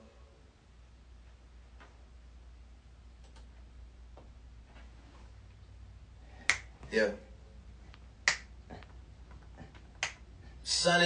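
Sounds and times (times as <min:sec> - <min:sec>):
finger snaps: 0:06.4 - 0:06.8, 0:07.9 - 0:08.5, 0:10.0 - 0:10.2.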